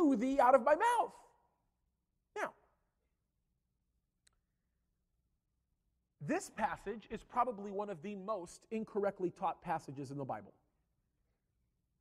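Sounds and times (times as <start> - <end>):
man speaking: 0.0 - 1.4, 2.3 - 2.7, 6.2 - 10.6.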